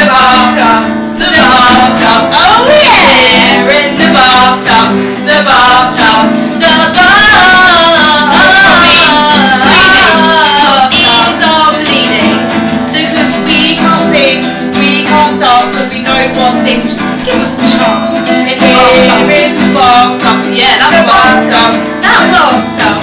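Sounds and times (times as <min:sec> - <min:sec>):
strummed guitars: 0:00.0 - 0:23.0
woman singing: 0:00.0 - 0:23.0.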